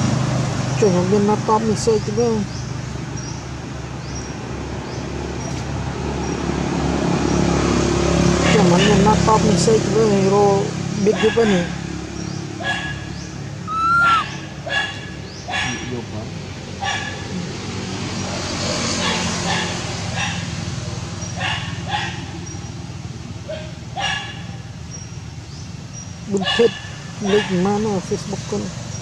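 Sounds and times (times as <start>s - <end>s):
baby monkey high-pitched cries: 13.6s - 15.9s.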